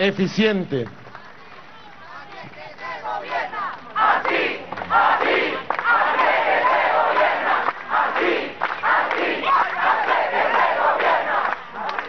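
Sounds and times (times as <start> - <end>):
crowd shouting: 1.1 - 12.0.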